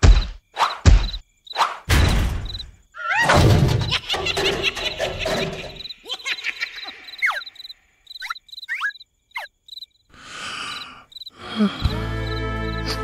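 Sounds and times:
crickets chirping: 0:00.0 - 0:13.0
quick falling squeaks: 0:07.1 - 0:09.5
slow music with low bass: 0:11.8 - 0:13.0.

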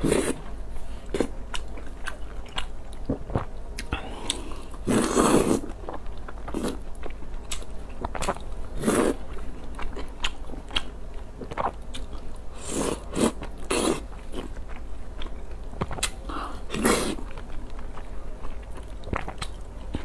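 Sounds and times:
chewing noodles: 0:01.1 - 0:20.0
slurping broth: 0:04.9 - 0:05.7, 0:16.7 - 0:17.2.

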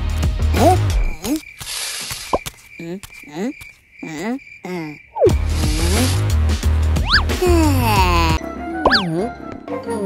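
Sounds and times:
cartoon character squeaky vocals: 0:07.1 - 0:08.4.

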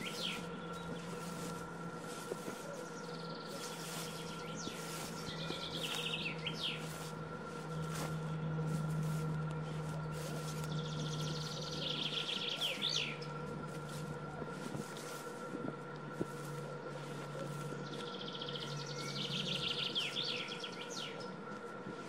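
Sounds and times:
songbird trilling: 0:00.0 - 0:08.2, 0:09.8 - 0:14.1, 0:17.2 - 0:21.4
steady low hum: 0:00.0 - 0:22.0.

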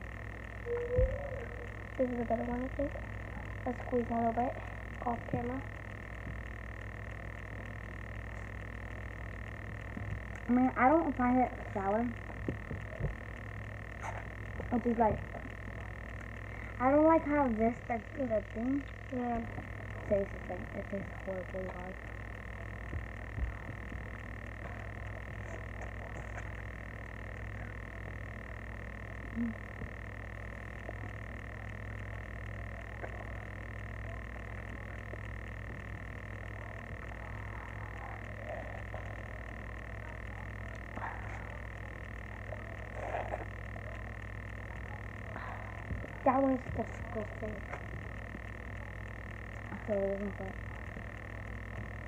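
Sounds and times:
constant low hum: 0:00.0 - 0:52.0
high whine: 0:00.0 - 0:52.0
low background rumble: 0:00.0 - 0:52.0
thin steady high tone: 0:00.0 - 0:52.0.

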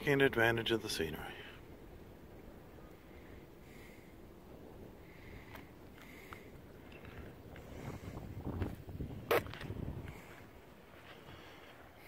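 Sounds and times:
wind buffeting microphone: 0:01.6 - 0:11.9.

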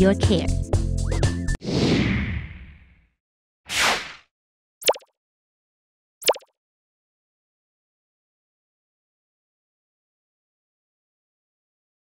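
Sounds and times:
synthetic pop sound effect: 0:04.8 - 0:05.1, 0:06.2 - 0:06.5.

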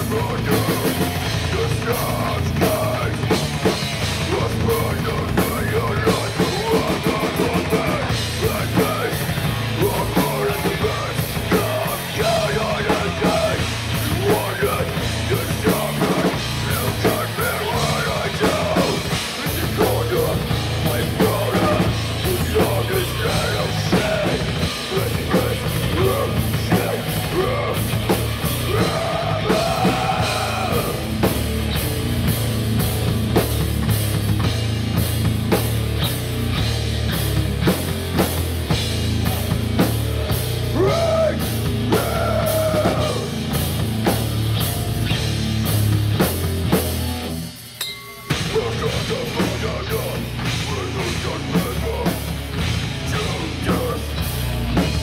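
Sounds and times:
person singing: 0:00.0 - 0:31.3, 0:40.7 - 0:43.5, 0:48.3 - 0:52.3, 0:53.0 - 0:54.5
heavy metal band playing: 0:00.0 - 0:55.0.

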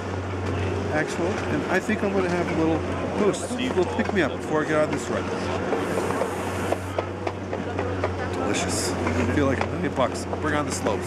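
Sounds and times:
oxygen canister hiss: 0:05.8 - 0:06.9.

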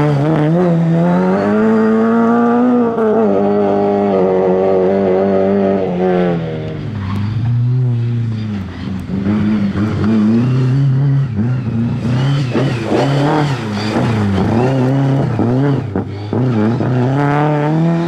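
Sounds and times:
rally car engine revving: 0:00.0 - 0:18.0.

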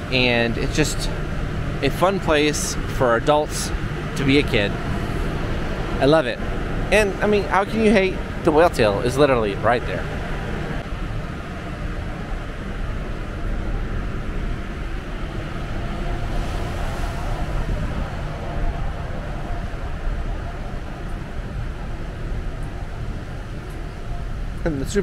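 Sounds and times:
low rumble and hiss: 0:00.0 - 0:25.0.

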